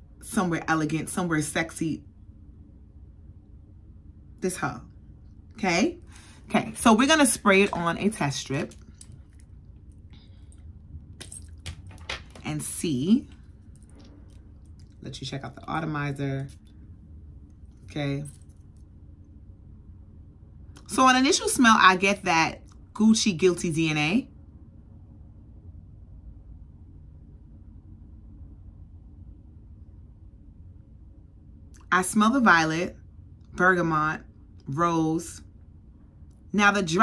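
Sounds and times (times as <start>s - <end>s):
faint low hum: 0.0s - 37.0s.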